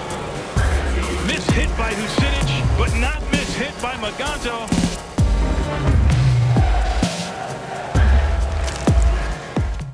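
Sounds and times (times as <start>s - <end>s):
electronic music: 0.0s - 9.9s.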